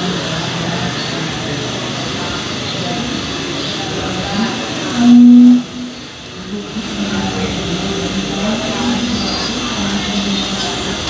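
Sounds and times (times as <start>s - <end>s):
indistinct voices: 0.0s - 11.0s
steady machinery noise: 0.0s - 11.0s
loud steady tone: 3.5s - 10.7s.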